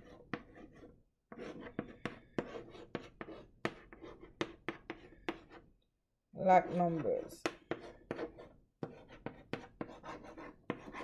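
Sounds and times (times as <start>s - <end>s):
chalk tapping on chalkboard: 0.0s - 5.6s, 6.6s - 11.0s
chalk scratching: 0.0s - 5.7s, 6.6s - 11.0s.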